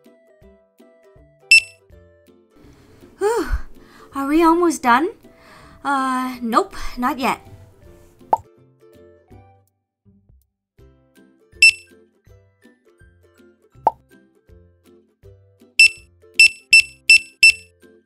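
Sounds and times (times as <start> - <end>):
soft children's music: 0.0 - 18.0
checkout scanner beeps: 1.5 - 1.8, 11.6 - 11.8, 15.8 - 17.7.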